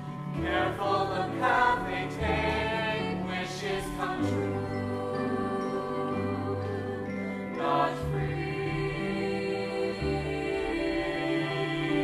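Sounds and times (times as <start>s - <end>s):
instrumental accompaniment: 0.0s - 12.0s
voices singing together: 0.0s - 12.0s.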